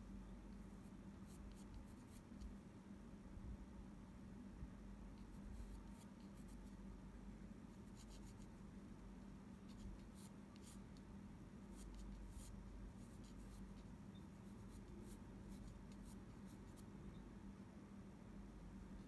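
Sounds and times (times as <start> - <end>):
low steady hum: 0.0 - 19.0
pencil scratching on paper: 7.8 - 8.5, 9.6 - 10.8, 11.7 - 16.9.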